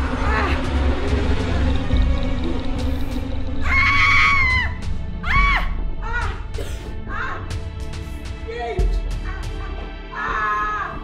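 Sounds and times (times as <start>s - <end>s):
film music: 0.0s - 11.0s.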